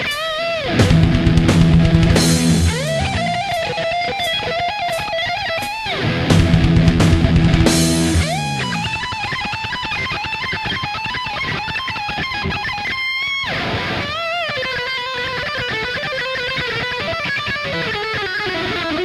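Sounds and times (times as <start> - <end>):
distorted electric guitar lead: 0.0 - 19.0
rock backing with drums: 0.0 - 19.0.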